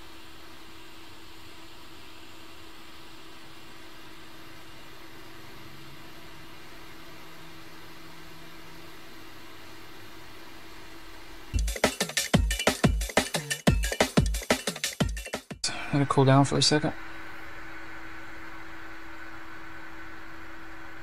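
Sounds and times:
faint steady hum: 15.6 - 21.0.

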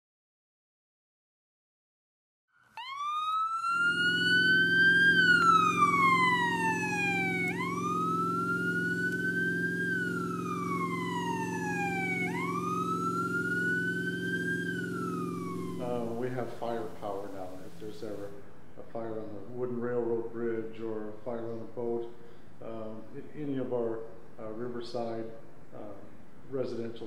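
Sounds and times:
emergency siren wailing: 2.8 - 17.8
low engine drone: 2.8 - 18.3.

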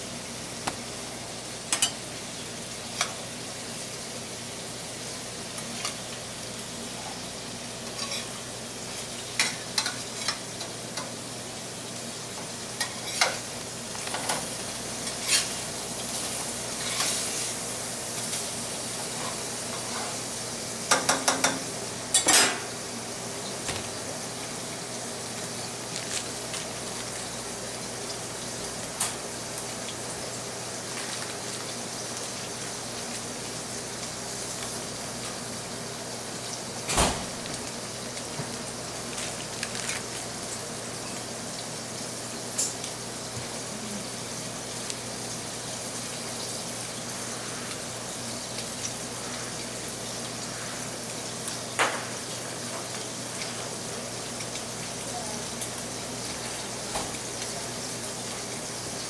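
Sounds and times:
patties sizzling in a pan: 0.0 - 59.0.

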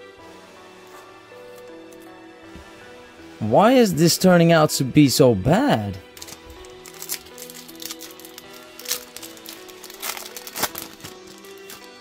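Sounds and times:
soft background music: 0.0 - 12.0
foil wrapper crinkling and tearing: 6.1 - 12.0.

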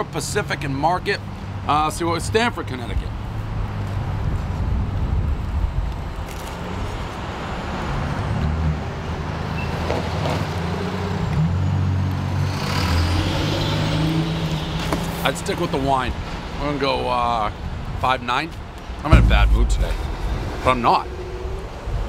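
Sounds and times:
passing motor vehicles rumble: 18.6 - 22.0.

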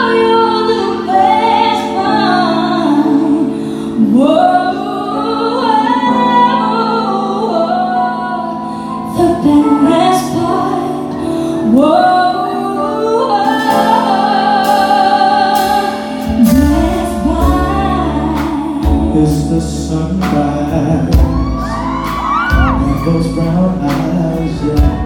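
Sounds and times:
woman singing: 0.0 - 25.0
band playing: 9.0 - 25.0.

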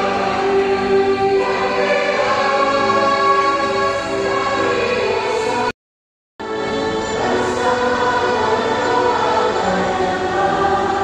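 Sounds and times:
choir singing a hymn: 0.0 - 5.7, 6.4 - 11.0.

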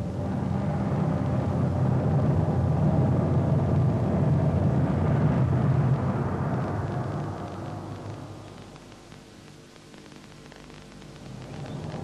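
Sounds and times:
cartoon low rumble: 0.0 - 9.0.

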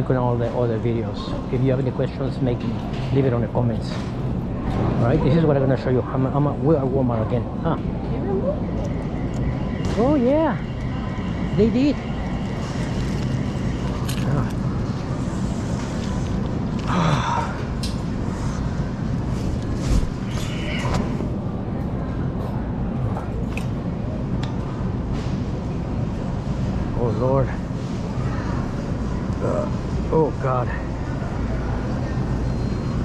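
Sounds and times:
distant voices: 0.0 - 33.0.

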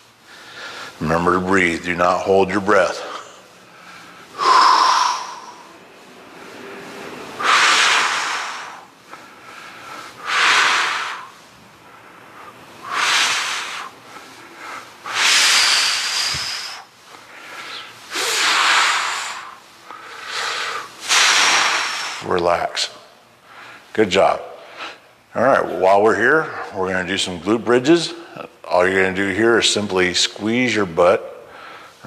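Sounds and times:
man breathing hard: 0.2 - 1.0, 3.0 - 22.3, 31.5 - 32.0.

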